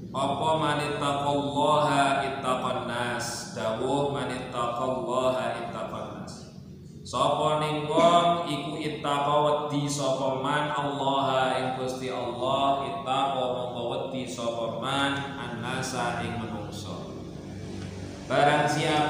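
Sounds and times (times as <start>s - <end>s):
man chanting recitation: 0.0s - 6.4s, 7.0s - 17.1s, 18.3s - 19.0s.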